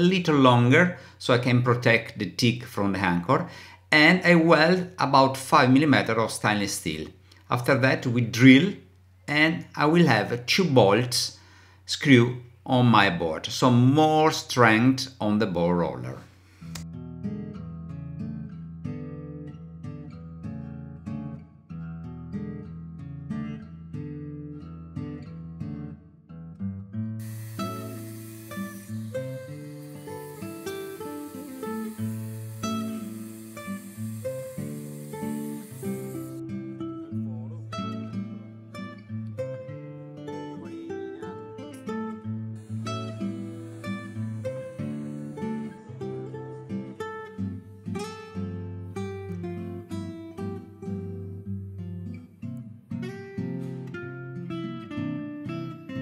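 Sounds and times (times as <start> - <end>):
acoustic guitar music: 15.8 - 56.0
steady high hiss: 27.2 - 36.4, 42.6 - 46.1.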